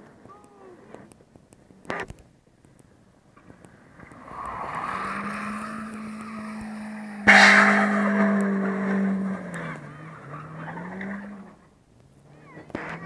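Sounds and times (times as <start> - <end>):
car engine revving high: 3.8 - 11.5
loud tyre squeal: 3.9 - 11.5.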